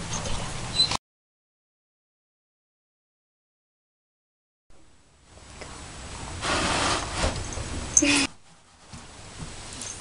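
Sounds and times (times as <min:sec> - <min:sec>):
wooden door scraping in frame: 0:06.4 - 0:07.9.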